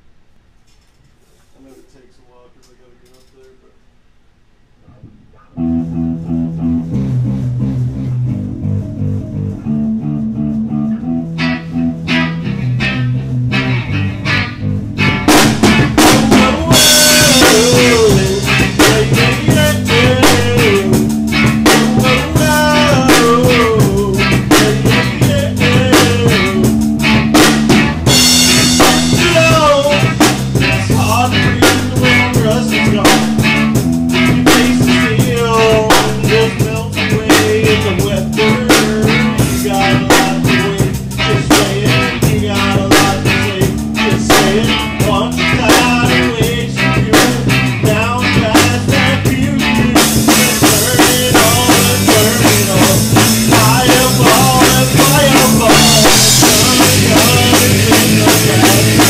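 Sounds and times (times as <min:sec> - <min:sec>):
electric bass line: 0:05.0 - 0:59.0
electric guitar lead: 0:05.4 - 0:59.0
rock band playing live: 0:05.6 - 0:59.0.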